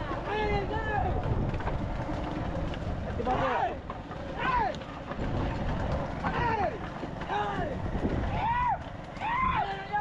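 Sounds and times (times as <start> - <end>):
low rumble of wind and cart: 0.0 - 10.0.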